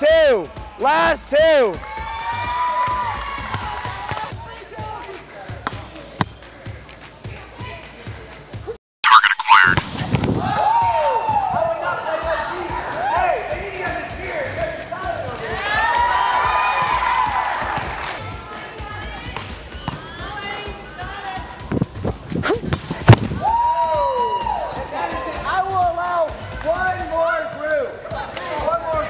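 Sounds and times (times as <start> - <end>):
volleyball impacts on court: 3.5 - 4.3, 5.5 - 6.4, 19.3 - 20.1, 22.5 - 23.4.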